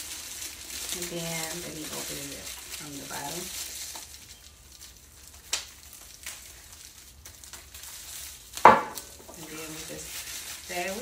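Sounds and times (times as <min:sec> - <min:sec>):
plastic wrap rustling: 0:00.0 - 0:11.0.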